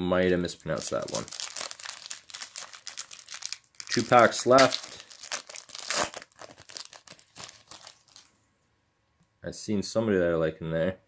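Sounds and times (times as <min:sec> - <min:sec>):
foil wrapper tearing and crinkling: 0:00.6 - 0:08.3.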